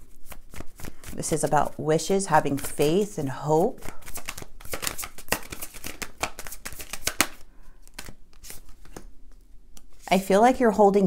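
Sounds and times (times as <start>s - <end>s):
cards being shuffled: 0.0s - 1.8s, 2.5s - 10.1s.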